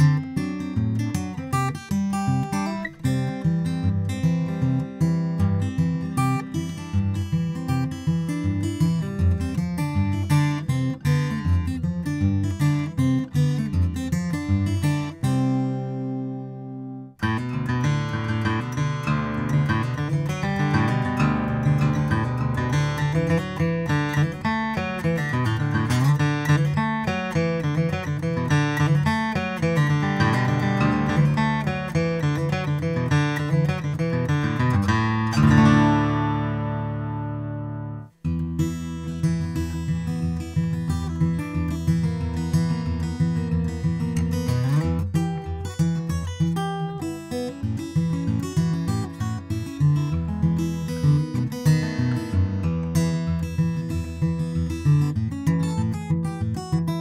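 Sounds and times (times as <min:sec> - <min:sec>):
acoustic guitar fingerstyle: 0:00.0 - 0:57.0.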